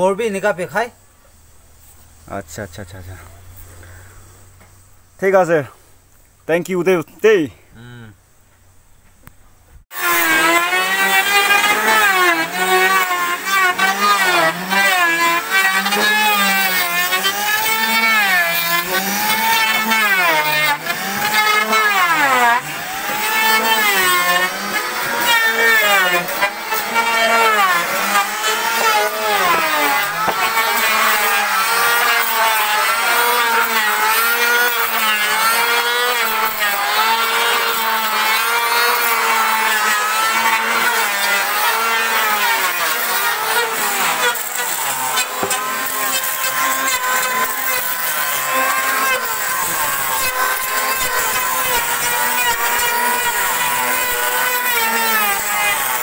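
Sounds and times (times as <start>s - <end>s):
electric wood planer running: 9.9s - 56.0s.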